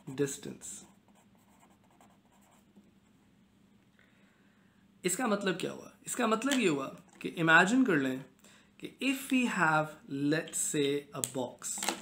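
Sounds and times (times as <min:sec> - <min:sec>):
pen scratching on paper: 0:00.7 - 0:02.7.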